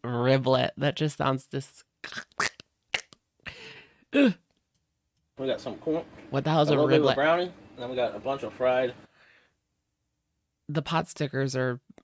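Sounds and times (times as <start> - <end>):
breathy exhale: 9.0 - 9.6.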